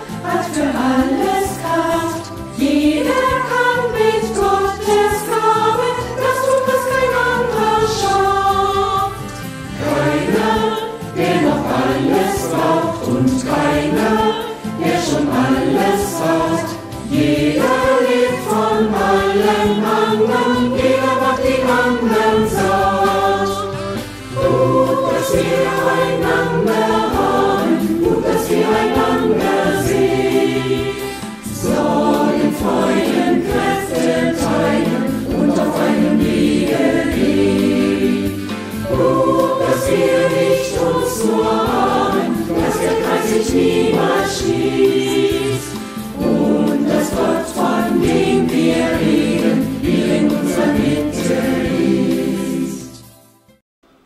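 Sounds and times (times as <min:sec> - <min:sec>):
mixed choir singing: 0:00.0 - 0:53.2.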